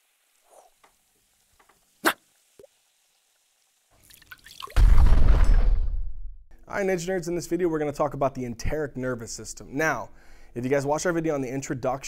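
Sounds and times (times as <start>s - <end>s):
small liquid drips: 0.3s - 4.8s
loud cartoon explosion: 4.8s - 6.2s.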